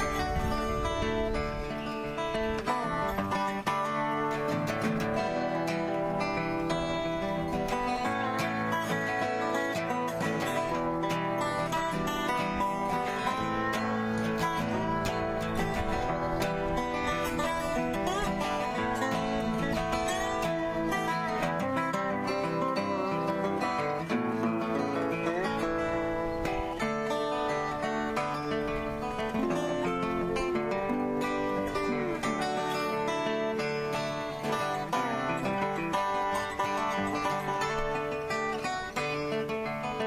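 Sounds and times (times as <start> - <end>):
acoustic guitar: 0.0 - 40.0
slide guitar gliding notes: 0.0 - 40.0.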